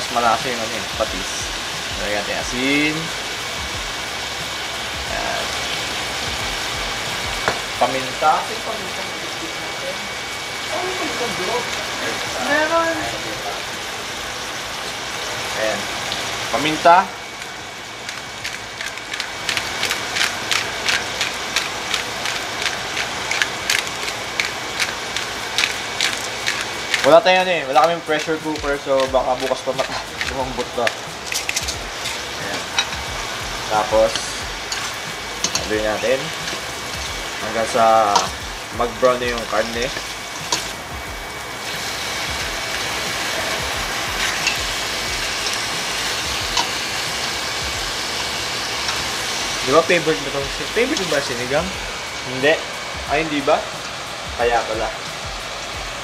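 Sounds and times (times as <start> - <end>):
oil crackling and popping: 0.0 - 8.6, 10.7 - 56.0
meat sizzling in hot oil: 0.0 - 56.0.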